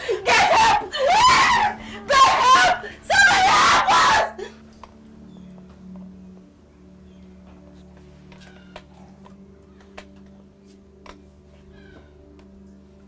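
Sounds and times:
person screaming and wailing: 0.0s - 4.5s
faint low music drone: 0.0s - 13.0s.

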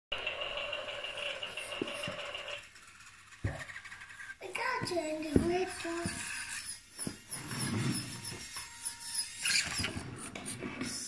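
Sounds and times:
toy motor whining: 0.2s - 11.0s.

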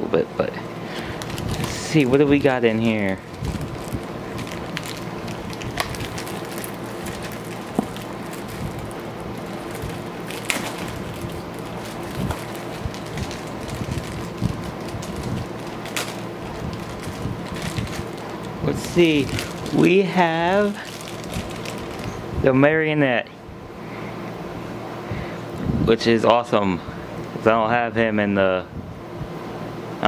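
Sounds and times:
foil bag crinkling: 0.9s - 22.2s.

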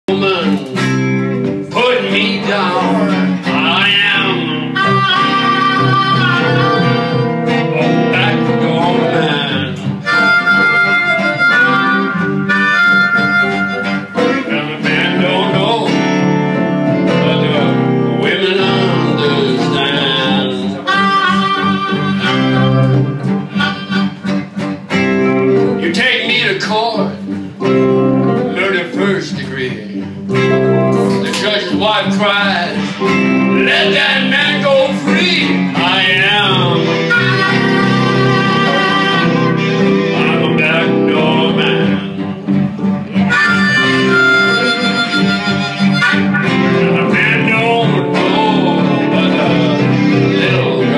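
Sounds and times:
blues band with electric guitars: 0.0s - 50.9s
blues harmonica wailing: 0.1s - 50.9s.

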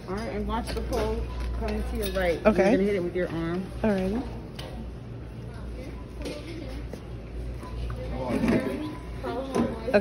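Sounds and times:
low steady store hum: 0.0s - 10.0s.

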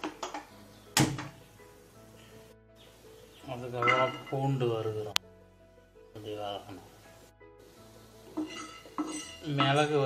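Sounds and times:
metal spoon scraping a pan: 8.3s - 10.0s.

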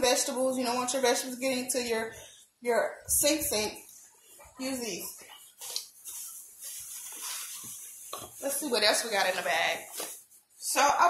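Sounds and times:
plastic bag rustling and crinkling: 4.2s - 10.7s.

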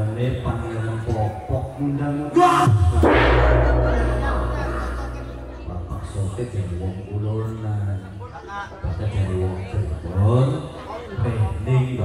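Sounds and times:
large gong ringing: 2.7s - 6.8s.

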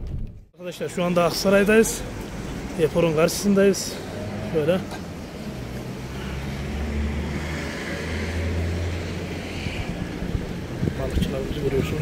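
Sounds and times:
street noise: 0.1s - 12.0s
vehicle engine hum: 1.0s - 12.0s.

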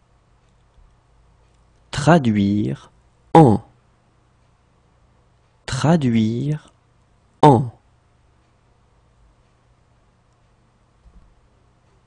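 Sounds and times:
man speaking: 1.9s - 3.7s, 5.7s - 6.7s, 7.4s - 7.8s.

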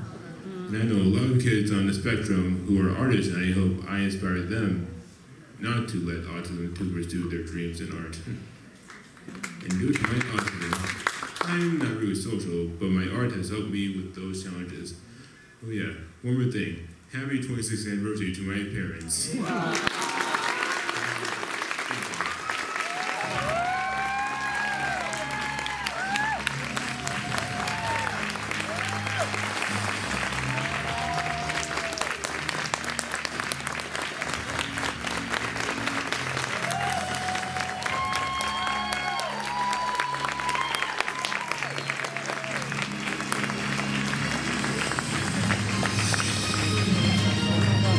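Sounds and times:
audience applauding: 8.9s - 12.1s, 19.3s - 47.9s
music playing: 21.8s - 47.9s.

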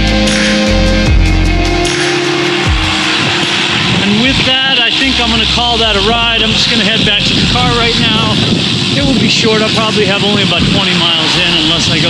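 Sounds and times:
background music: 0.0s - 12.0s
wind rumbling on microphone: 0.0s - 12.0s
man talking: 4.0s - 12.0s.

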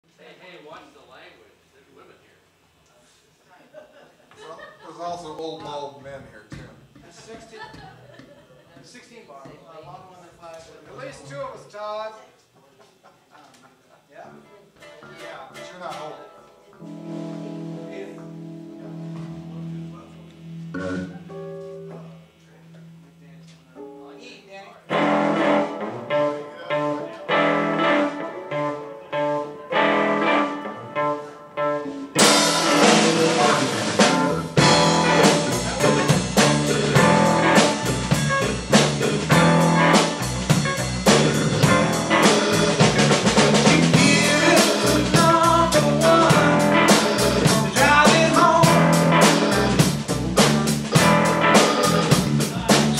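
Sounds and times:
live blues band playing: 14.8s - 23.1s, 24.9s - 52.9s
electric guitar held notes: 15.0s - 24.0s, 24.9s - 52.9s
drum kit: 16.8s - 23.1s, 24.9s - 52.9s.

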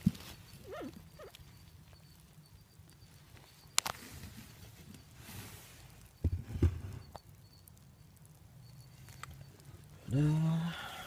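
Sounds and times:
wavering animal calls: 0.0s - 3.8s.

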